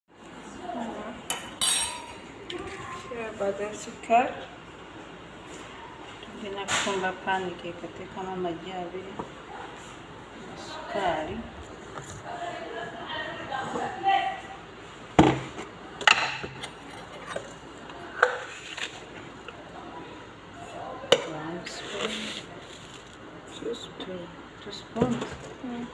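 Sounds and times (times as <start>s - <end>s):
glass bowl clinking: 1.3s - 2.3s.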